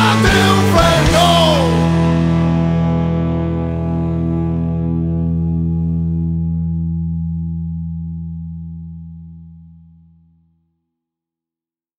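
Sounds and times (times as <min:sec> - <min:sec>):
distorted electric guitar chord: 0:00.0 - 0:10.0.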